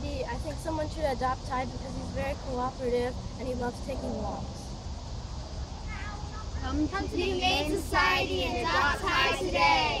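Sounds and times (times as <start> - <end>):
children shouting in chorus: 7.2 - 10.0.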